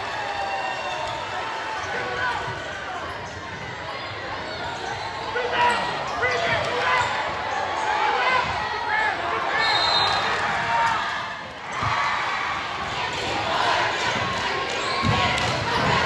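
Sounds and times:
voices of players and crowd: 0:00.0 - 0:16.0
sneakers squeaking: 0:02.5 - 0:03.8, 0:04.4 - 0:07.3, 0:14.7 - 0:15.9.

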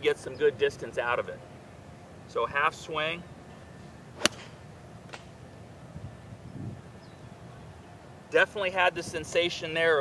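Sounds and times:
golf club striking ball: 0:04.2 - 0:05.3.

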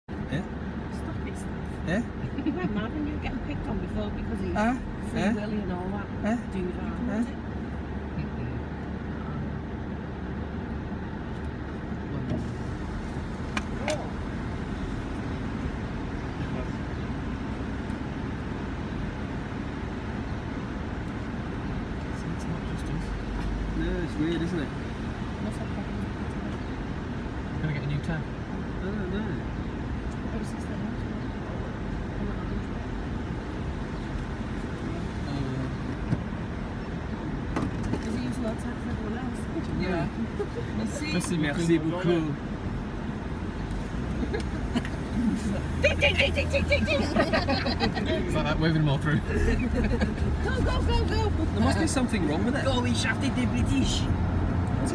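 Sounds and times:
car engine idling: 0:00.1 - 0:54.9
distant road traffic: 0:00.1 - 0:54.9.

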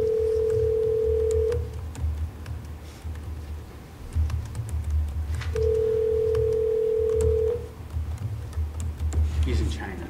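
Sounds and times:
telephone ringback tone: 0:00.0 - 0:01.7, 0:05.6 - 0:07.7.

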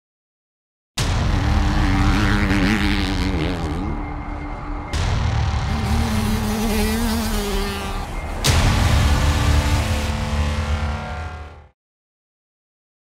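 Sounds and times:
loud hit: 0:01.0 - 0:03.1, 0:04.0 - 0:11.7
engine revving: 0:01.0 - 0:11.7
intro music: 0:01.0 - 0:11.7.

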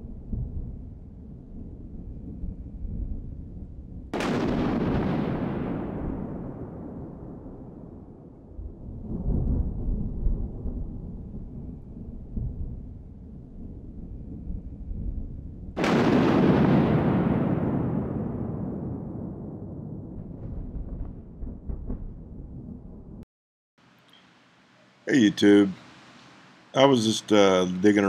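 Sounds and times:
low rumble: 0:00.0 - 0:05.4, 0:06.1 - 0:15.8, 0:17.5 - 0:23.2
explosion boom: 0:04.1 - 0:11.4, 0:15.8 - 0:23.2.

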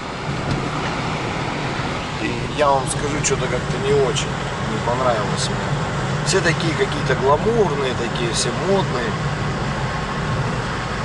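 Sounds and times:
low cabin hum: 0:00.0 - 0:11.0
tyres on wet road: 0:00.0 - 0:11.0.

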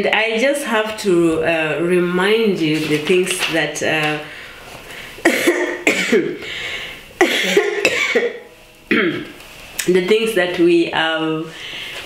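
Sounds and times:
woman coughing: 0:05.2 - 0:06.4, 0:07.2 - 0:09.3.

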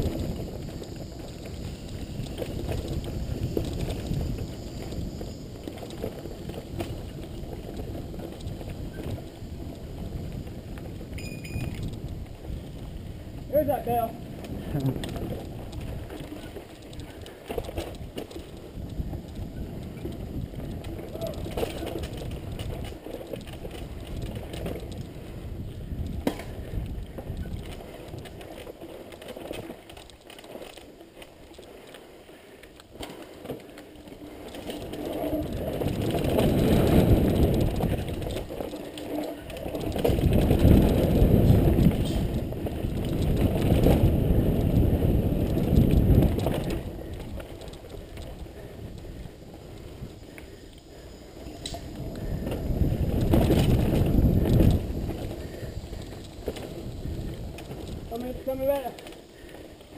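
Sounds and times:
wind rushing over microphone: 0:00.0 - 0:28.5, 0:34.4 - 0:59.5
bike rattling over bumps: 0:00.0 - 0:59.9.

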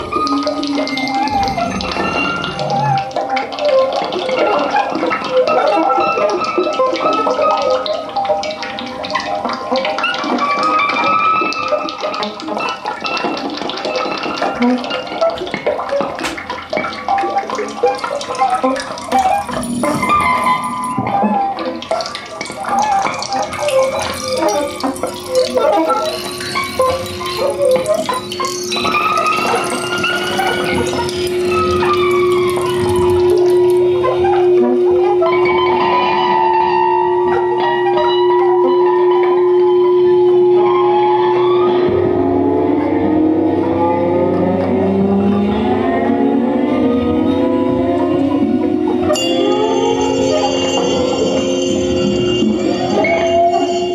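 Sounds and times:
faint higher electronic tones: 0:00.0 - 0:03.4, 0:23.7 - 0:53.9
held saxophone tone: 0:47.1 - 0:53.9.

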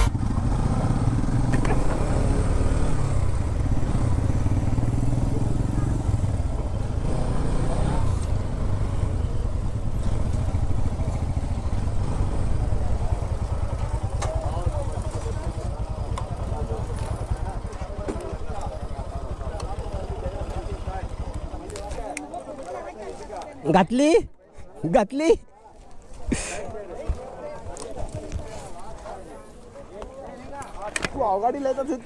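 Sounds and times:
motorcycle engine running: 0:00.0 - 0:22.7.

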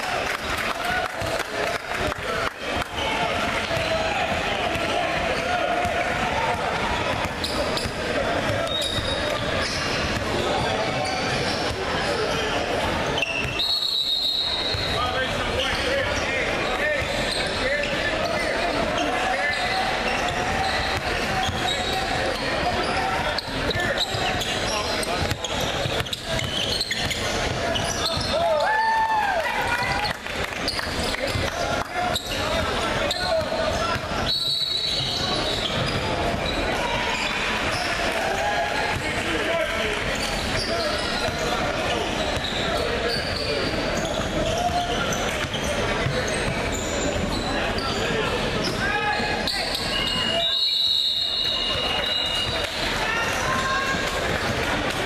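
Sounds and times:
voices talking and shouting: 0:00.0 - 0:55.0
referee's whistle: 0:13.2 - 0:15.7, 0:33.1 - 0:36.6, 0:48.7 - 0:52.7.

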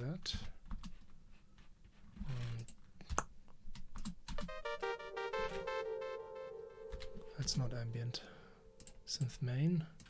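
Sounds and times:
synthesizer held pulsing notes: 0:04.4 - 0:09.1.

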